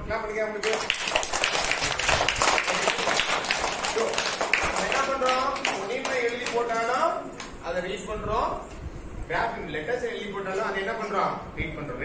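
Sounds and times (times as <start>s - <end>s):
children applauding: 0.6s - 7.1s.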